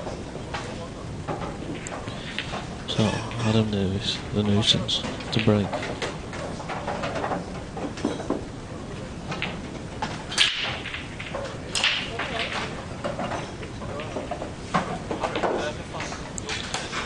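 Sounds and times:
cue ball cracking into pool balls: 0.0 - 3.5, 9.3 - 16.9
pool balls clicking: 0.0 - 17.0.

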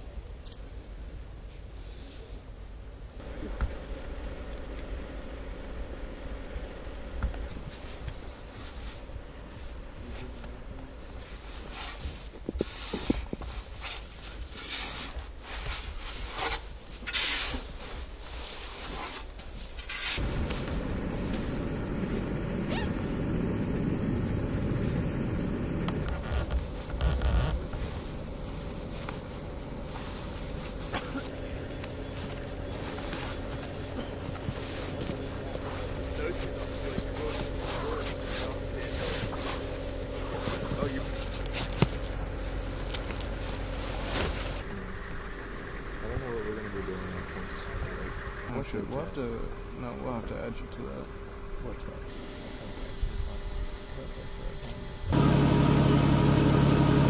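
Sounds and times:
steady low hum with tone: 0.0 - 57.0
snow shovel scraping snow: 11.2 - 20.9, 32.1 - 42.0, 42.8 - 44.6.

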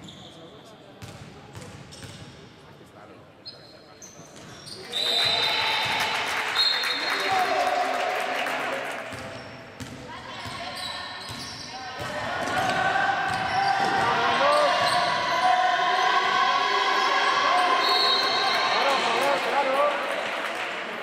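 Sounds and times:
sneakers squeaking on court floor: 0.0 - 2.5, 3.4 - 5.4, 9.1 - 15.5
basketball bouncing: 9.8 - 10.6.

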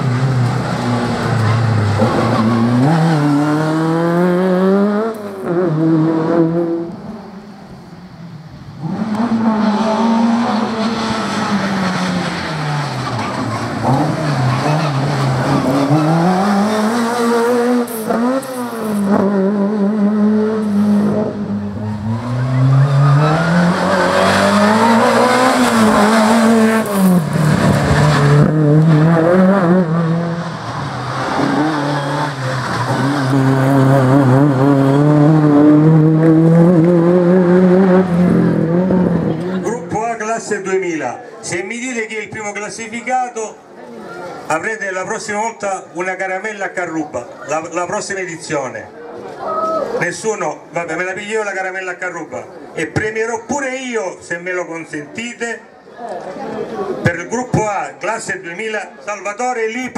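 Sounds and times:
race car engine revving: 0.0 - 7.5, 8.6 - 40.7.

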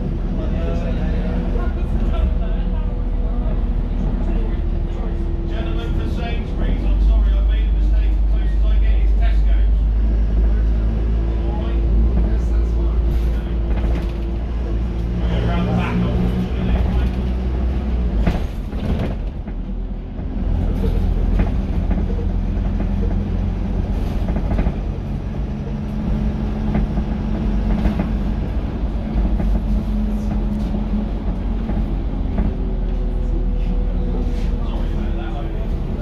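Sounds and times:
bus diesel engine drone: 0.0 - 36.0
interior rattles and clicks: 11.9 - 33.2.

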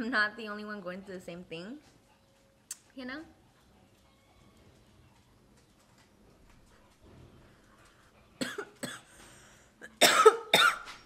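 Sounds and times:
woman coughing: 8.4 - 9.1, 9.8 - 10.9.

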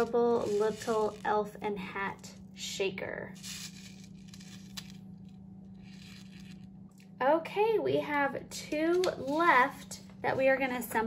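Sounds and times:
beads clicking inside paper card: 3.4 - 6.7.

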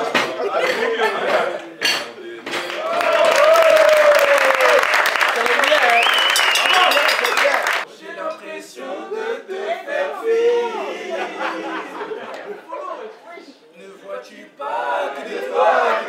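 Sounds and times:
people clapping and cheering: 2.4 - 7.9, 11.5 - 12.6.

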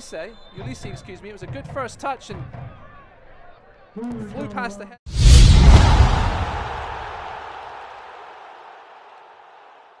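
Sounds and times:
boom sound effect hit: 5.1 - 7.5.

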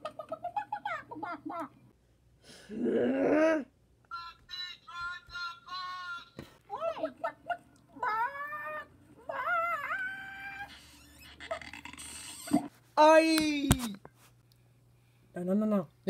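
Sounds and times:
squeaky cat-like cries: 9.3 - 12.7.

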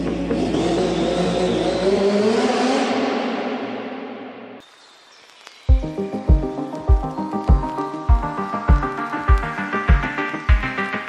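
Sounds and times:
synthwave music: 0.0 - 3.2, 5.7 - 11.0
car engine rising in pitch: 0.0 - 3.3.

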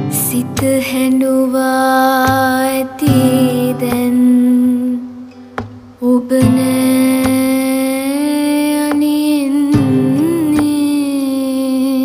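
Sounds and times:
acoustic ballad: 0.0 - 12.0
woman singing a long note: 6.0 - 12.0.

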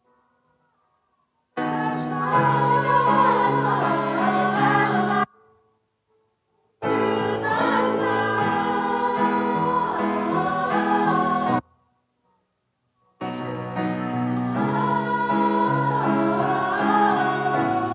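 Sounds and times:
choir singing: 1.6 - 5.3, 6.8 - 11.6, 13.3 - 17.9.

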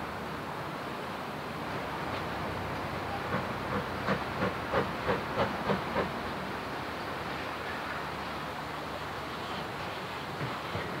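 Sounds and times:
steady hiss of steam: 0.0 - 11.0
steam locomotive exhaust beats: 2.2 - 6.5, 9.6 - 11.0.

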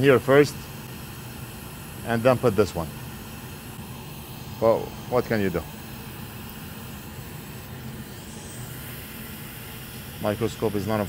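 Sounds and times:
man speaking: 4.6 - 5.7, 10.2 - 11.0.

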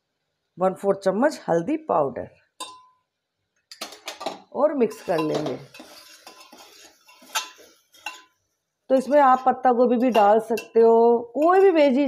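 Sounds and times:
spoon clinking on metal wall: 2.6 - 3.0, 3.8 - 8.4, 9.0 - 10.8
metal spoon stirring in pot: 3.7 - 12.0.

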